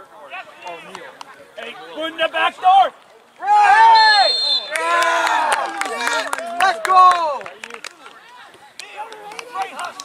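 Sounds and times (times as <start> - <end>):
spectators yelling and cheering: 0.2 - 10.0
high steady whistle: 3.8 - 4.8.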